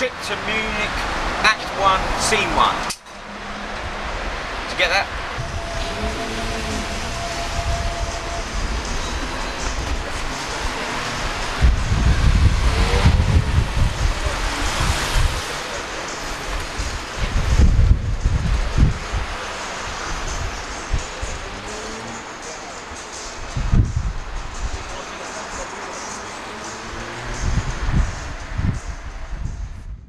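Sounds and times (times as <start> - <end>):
street noise: 0.0 - 30.0
wind buffeting microphone: 3.2 - 21.6, 23.4 - 25.0, 27.0 - 30.0.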